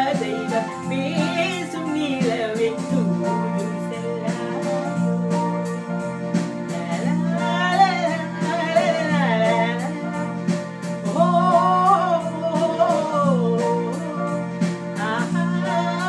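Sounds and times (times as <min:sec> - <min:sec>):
electronic keyboard with steady beat: 0:00.0 - 0:16.0.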